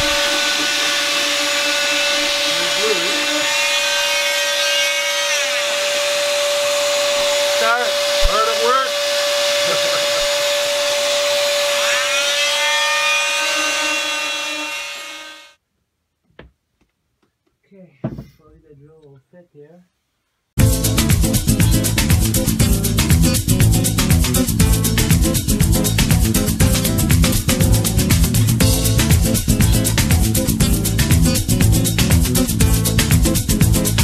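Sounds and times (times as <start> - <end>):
electric motor running: 0.0 - 15.5.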